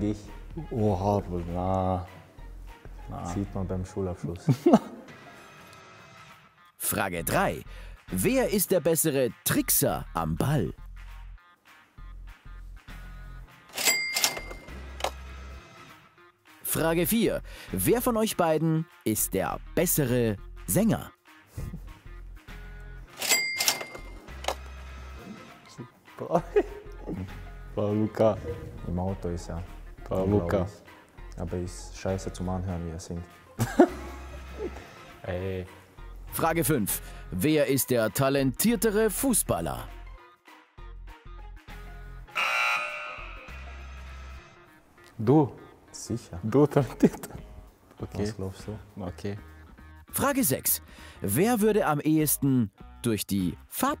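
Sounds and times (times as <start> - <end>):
background music: 0.0 - 54.0
quiz-show buzzer: 42.3 - 44.7.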